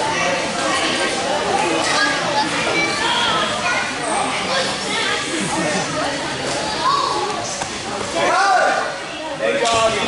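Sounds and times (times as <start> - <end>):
children talking and shouting: 0.0 - 10.0.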